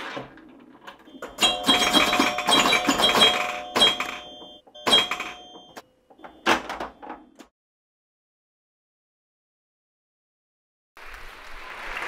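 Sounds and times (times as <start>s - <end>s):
bright ringing chime tones: 1.1s - 6.5s.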